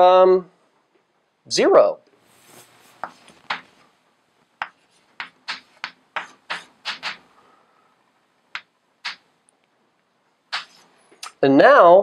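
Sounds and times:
chalk striking a blackboard: 0:02.6 - 0:03.8, 0:04.6 - 0:07.3, 0:08.5 - 0:09.3, 0:10.5 - 0:10.9.

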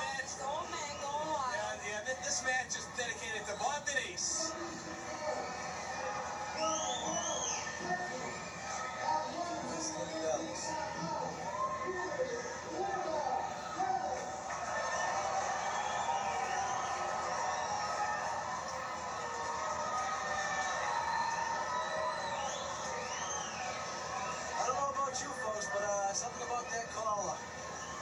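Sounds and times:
crowd chattering and yelling: 0:00.0 - 0:28.0.

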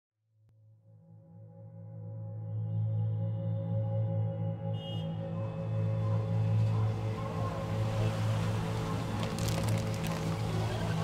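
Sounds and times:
ambient music drone: 0:00.7 - 0:11.0.

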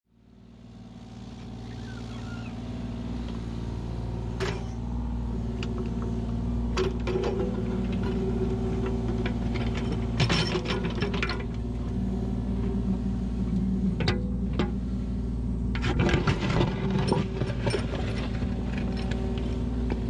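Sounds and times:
excavator diesel engine running: 0:00.3 - 0:20.0.

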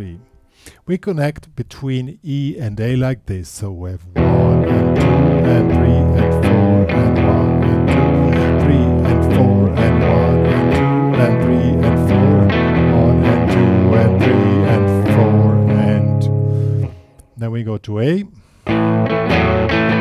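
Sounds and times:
electric guitar blues riff: 0:04.1 - 0:17.3, 0:18.6 - 0:20.0.

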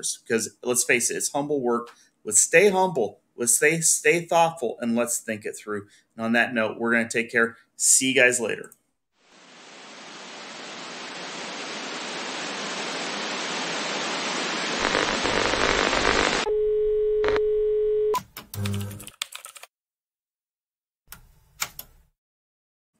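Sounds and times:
static hiss: 0:09.2 - 0:16.5.

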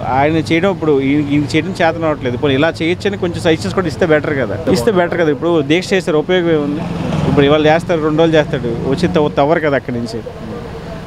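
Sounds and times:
man speaking: 0:00.0 - 0:10.7.

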